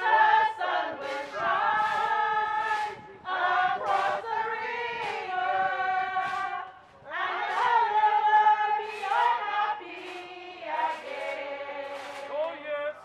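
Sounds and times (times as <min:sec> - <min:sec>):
group singing a hymn: 0:00.0 - 0:12.9.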